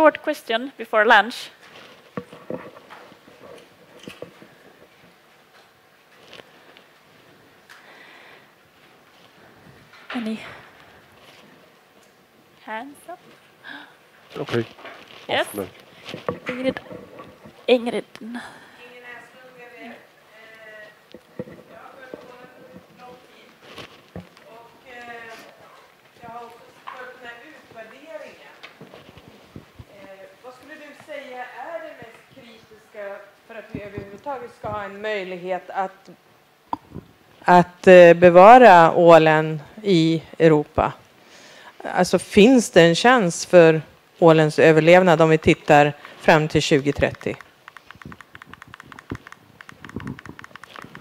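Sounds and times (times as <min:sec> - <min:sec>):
microphone handling noise: 0:28.8 - 0:30.0, 0:33.7 - 0:34.9, 0:46.9 - 0:51.0.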